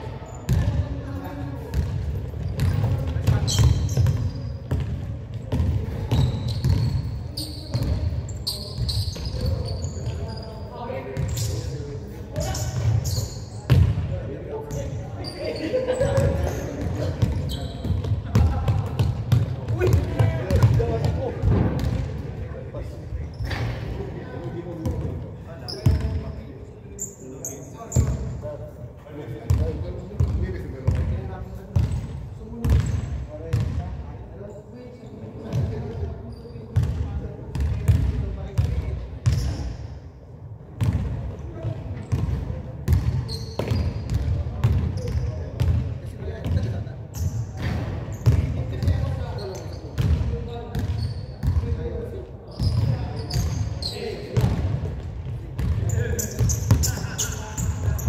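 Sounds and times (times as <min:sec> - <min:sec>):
basketballs bouncing on wood floor: 0:01.7 - 0:07.1, 0:13.7 - 0:14.0, 0:16.1 - 0:22.3, 0:42.1 - 0:45.8, 0:50.0 - 0:51.8, 0:54.4 - 0:55.0, 0:55.6 - 0:57.0
shoe squeaks: 0:02.3 - 0:04.9, 0:05.8 - 0:13.8, 0:14.6 - 0:18.2, 0:23.2 - 0:23.8, 0:25.6 - 0:28.5, 0:34.5 - 0:36.8, 0:39.2 - 0:39.9, 0:43.0 - 0:44.3, 0:44.9 - 0:45.5, 0:47.1 - 0:51.6, 0:52.5 - 0:54.4, 0:55.8 - 0:58.0.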